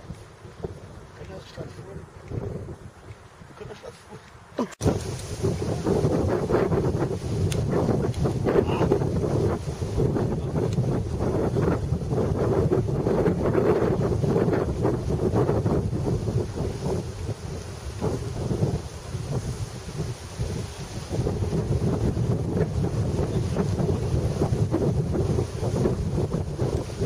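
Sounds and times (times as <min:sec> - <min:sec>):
wind buffeting microphone: 0:00.0 - 0:27.0.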